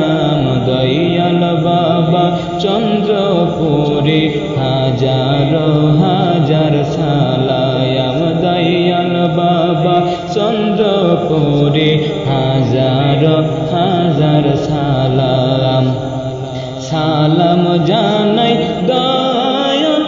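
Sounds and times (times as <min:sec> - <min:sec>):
devotional chant singing: 0:00.0 - 0:20.0.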